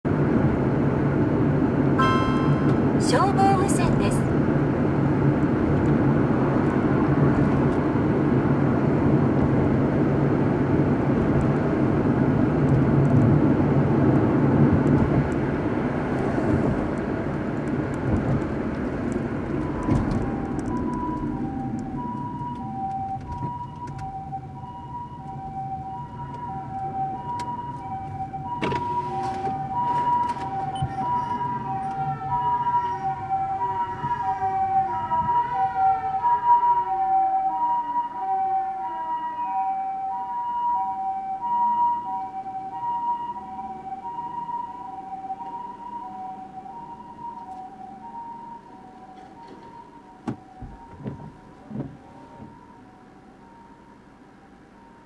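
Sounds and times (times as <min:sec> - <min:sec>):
car road and engine noise: 0:00.0 - 0:55.0
two-tone ambulance siren: 0:01.9 - 0:12.6, 0:18.7 - 0:55.0
rising and falling siren wails: 0:01.9 - 0:14.6, 0:18.5 - 0:55.0.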